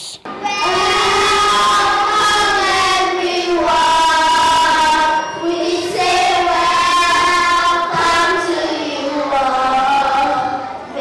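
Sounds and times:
children singing slow song: 0:00.3 - 0:11.0.

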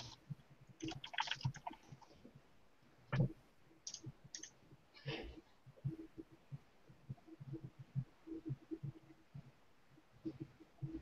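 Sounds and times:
mouse and keyboard clicks: 0:03.9 - 0:04.6.

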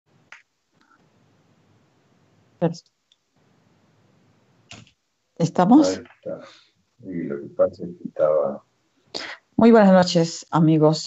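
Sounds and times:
sharp click: 0:04.7 - 0:05.0.

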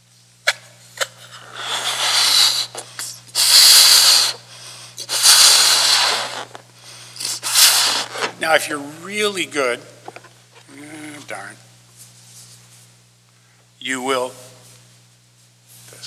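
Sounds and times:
man blowing up a balloon: 0:01.0 - 0:08.4.

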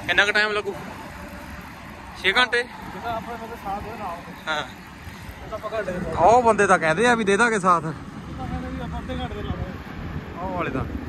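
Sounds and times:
men speaking: 0:00.0 - 0:11.0
road traffic noise: 0:00.0 - 0:11.0.

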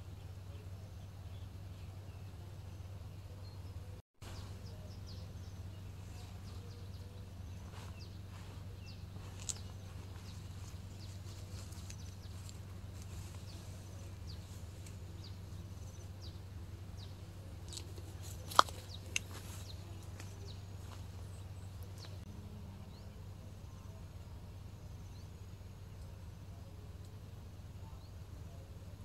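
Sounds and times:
small birds chirping: 0:00.0 - 0:29.0
steady low hum: 0:00.0 - 0:29.0.

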